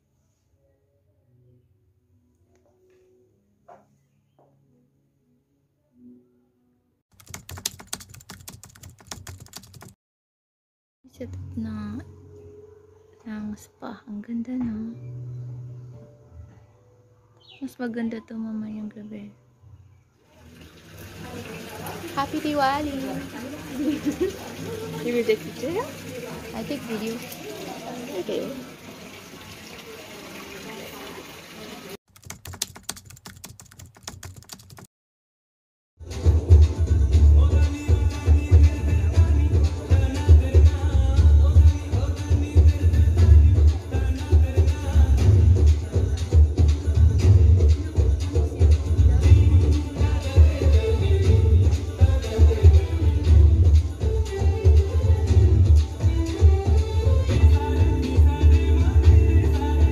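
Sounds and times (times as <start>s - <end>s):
keyboard typing: 7.1s - 10.0s, 32.1s - 34.9s.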